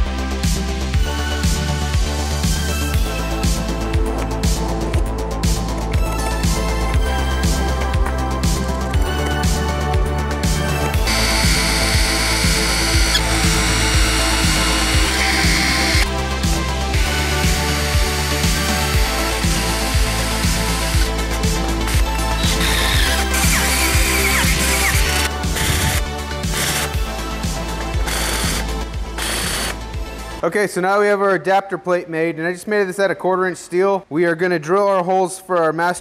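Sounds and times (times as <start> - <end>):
background music with steady beat: 0.0 - 32.8
power tools on steel plate: 11.0 - 16.1, 21.9 - 27.0, 28.0 - 29.8
tool winding down: 11.0 - 16.1, 17.0 - 27.0, 28.0 - 29.8
high steady tool whine: 11.0 - 27.1, 28.0 - 29.9.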